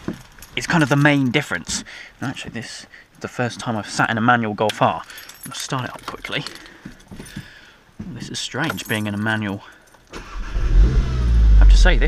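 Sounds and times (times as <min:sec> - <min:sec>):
car engine starting and revving: 0:10.2 - 0:12.0.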